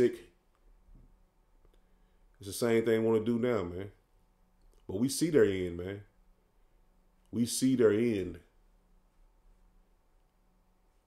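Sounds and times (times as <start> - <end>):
man speaking: 0.0 - 0.4, 2.4 - 4.0, 4.9 - 6.2, 7.3 - 8.6
low steady hum: 0.0 - 11.0.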